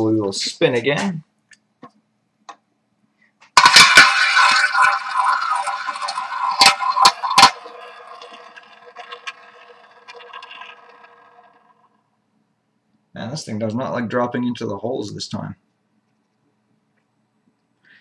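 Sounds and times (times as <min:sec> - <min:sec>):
ball rattling in roulette wheel: 0:03.6 - 0:12.1.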